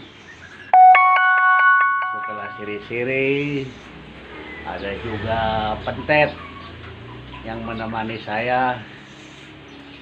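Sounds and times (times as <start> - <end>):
electronic chime tune: 0.8 - 2.9.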